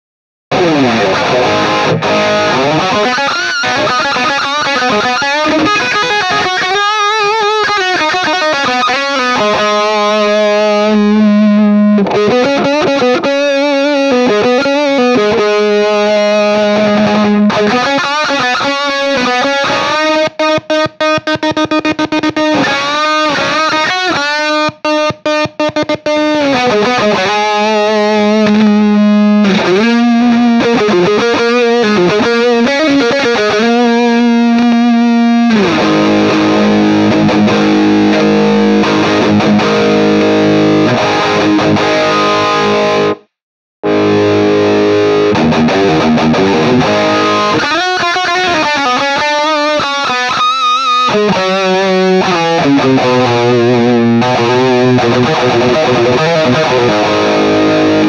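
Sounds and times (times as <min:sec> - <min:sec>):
distorted electric guitar: 0:00.5 - 0:58.0.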